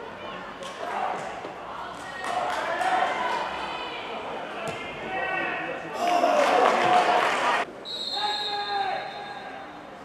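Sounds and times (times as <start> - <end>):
referee's whistle: 7.8 - 9.8.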